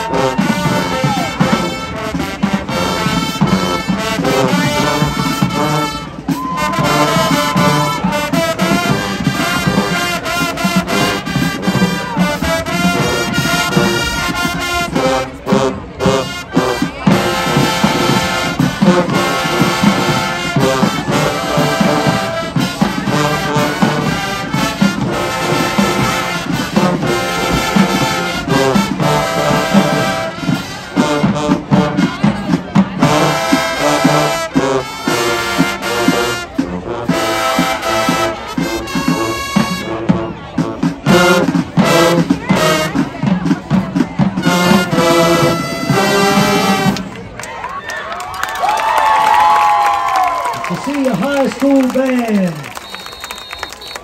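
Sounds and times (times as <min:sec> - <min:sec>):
drum beat: 0:00.0 - 0:47.1
brass marching band: 0:00.0 - 0:54.0.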